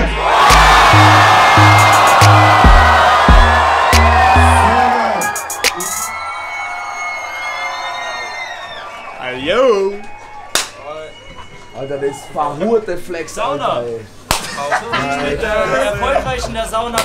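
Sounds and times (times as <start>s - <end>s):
crowd cheering and shouting: 0.0s - 13.2s.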